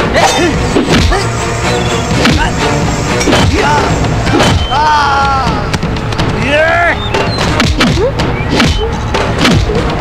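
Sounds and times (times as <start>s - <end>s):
dramatic background music: 0.0s - 10.0s
punch sound effects: 0.8s - 1.2s, 3.2s - 4.8s, 7.4s - 9.8s
shouted cries: 4.6s - 5.7s.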